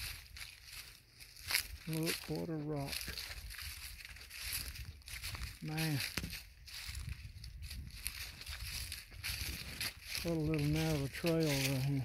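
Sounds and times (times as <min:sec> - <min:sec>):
footsteps in dry leaves: 0:00.0 - 0:12.0.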